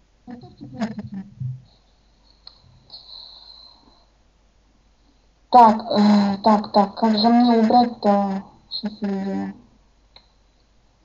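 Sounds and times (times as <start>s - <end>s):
faint breath: 2.0s - 4.2s.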